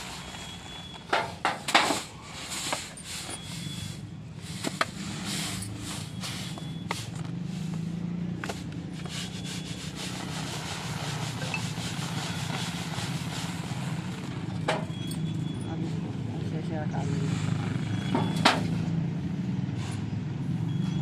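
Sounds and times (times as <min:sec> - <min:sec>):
grain pouring from metal tray: 0:09.1 - 0:14.2.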